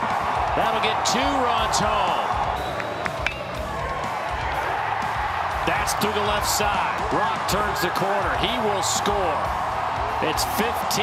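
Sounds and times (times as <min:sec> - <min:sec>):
background music: 0:00.0 - 0:11.0
stadium crowd noise: 0:00.0 - 0:11.0.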